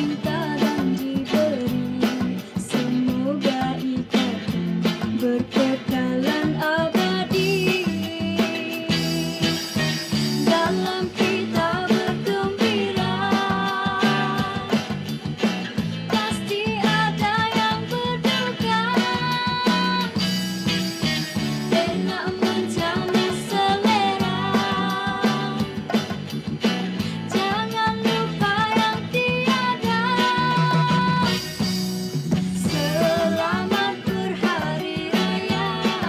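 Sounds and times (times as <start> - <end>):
woman singing: 0.0 - 15.0, 16.1 - 20.4, 21.4 - 25.8, 27.0 - 31.6, 32.5 - 36.0
acoustic guitar: 0.0 - 36.0
electric bass: 0.0 - 36.0
electronic drum-pad percussion: 8.9 - 12.8, 19.3 - 27.5, 31.0 - 36.0.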